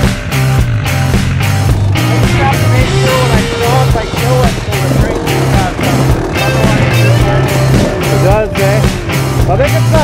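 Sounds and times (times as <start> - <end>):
rock music: 0.0 - 10.0.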